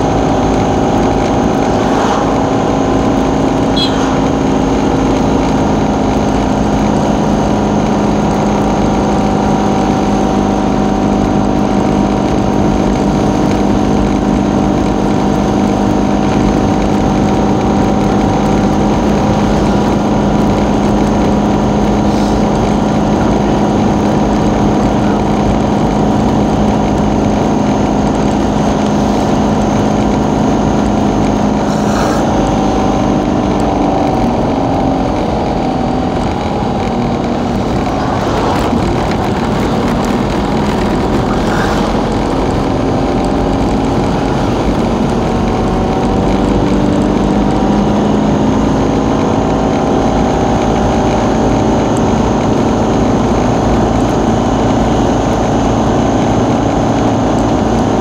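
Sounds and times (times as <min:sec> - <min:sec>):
road noise: 0:00.0 - 0:58.0
vehicle engine drone: 0:00.0 - 0:58.0.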